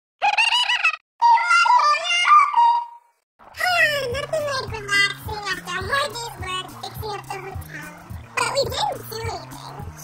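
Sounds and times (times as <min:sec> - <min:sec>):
high-pitched sped-up voice squealing: 0:00.2 - 0:04.0
music: 0:03.6 - 0:10.0.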